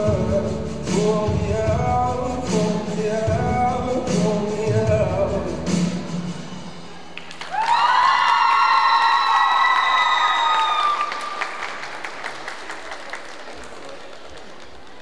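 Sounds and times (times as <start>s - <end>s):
high drawn-out cheer: 7.0s - 15.0s
audience applauding: 7.1s - 15.0s.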